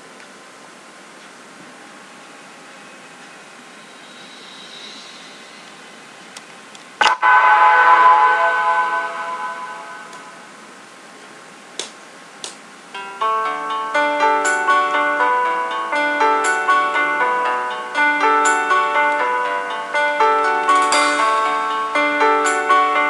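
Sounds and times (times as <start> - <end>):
low hiss: 0.0 - 23.0
sharp hit with ringing chord: 7.0 - 10.8, 13.0 - 23.0.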